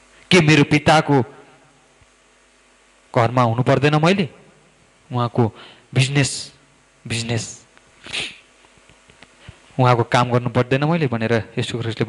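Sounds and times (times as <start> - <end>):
faint electrical hum: 0.0 - 12.0
man speaking into a microphone: 0.3 - 1.4, 3.1 - 4.4, 5.1 - 8.3, 9.8 - 12.0.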